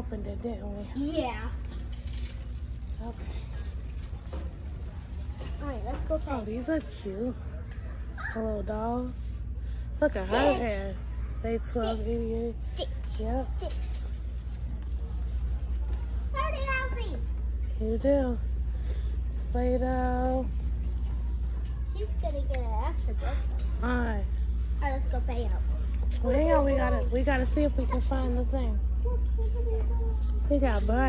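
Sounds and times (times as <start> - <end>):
shopping cart rolling: 1.0 - 7.2, 13.0 - 22.4, 23.1 - 28.7.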